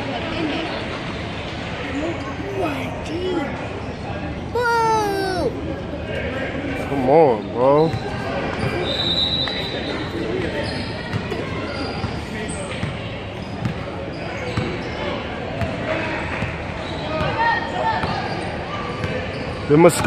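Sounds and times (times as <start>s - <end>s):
indistinct chatter of voices: 0.0s - 20.0s.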